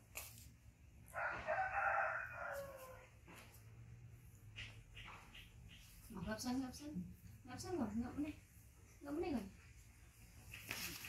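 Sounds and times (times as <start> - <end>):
rooster crowing: 1.1 - 3.2.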